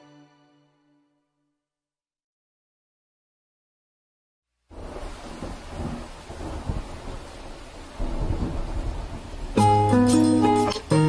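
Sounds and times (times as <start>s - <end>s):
rain: 4.6s - 11.0s
low rumbling thunder: 4.8s - 9.6s.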